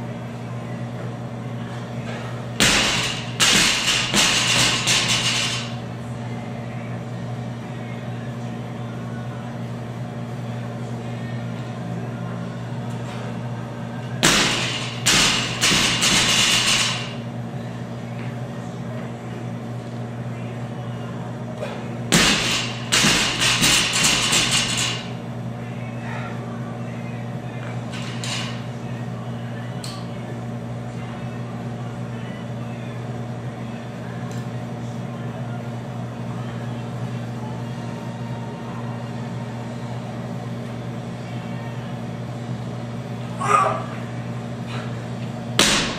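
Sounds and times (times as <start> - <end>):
steady low hum: 0.0 - 45.9.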